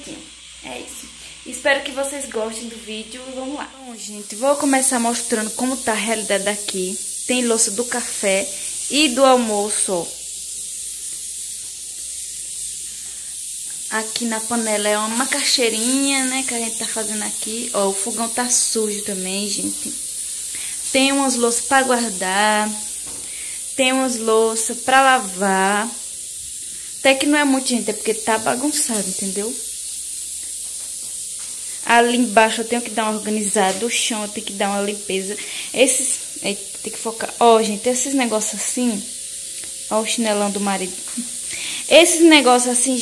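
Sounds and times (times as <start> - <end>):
pressure cooker steam hissing: 0.0 - 43.0.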